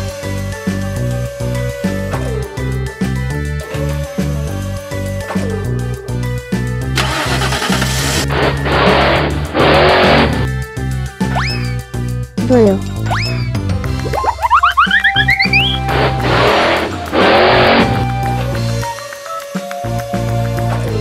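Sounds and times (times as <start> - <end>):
upbeat background music: 0.0 - 21.0
springy rising boing glides: 14.0 - 18.1
rising chirps: 14.1 - 18.9
rushing noise bursts: 15.5 - 18.7.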